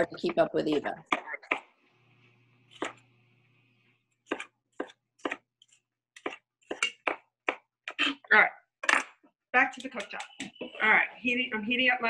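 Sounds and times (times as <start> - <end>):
knife chopping on wooden board: 2.7 - 3.0, 4.2 - 7.7.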